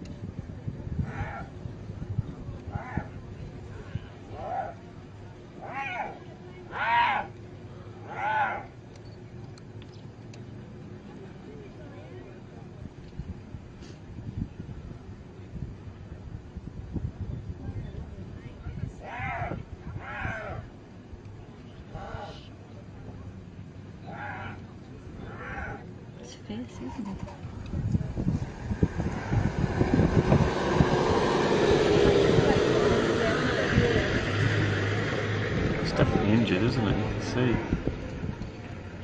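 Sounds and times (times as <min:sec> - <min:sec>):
steady low rumble: 0:00.0 - 0:39.0
hyena whining calls: 0:05.6 - 0:07.3, 0:08.0 - 0:08.7, 0:24.0 - 0:24.6.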